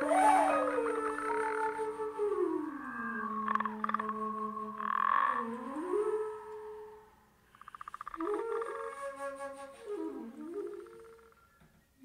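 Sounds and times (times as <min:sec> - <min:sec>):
flute: 0:00.0 - 0:07.3, 0:08.2 - 0:12.0
croaking pulsed bursts: 0:02.7 - 0:05.7, 0:07.5 - 0:08.9.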